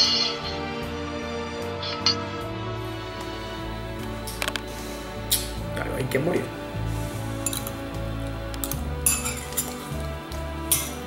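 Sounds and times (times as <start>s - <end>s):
background music: 0.0s - 11.0s
metal spoon clinking glass bowl: 7.4s - 7.8s, 8.6s - 9.9s, 10.7s - 11.0s.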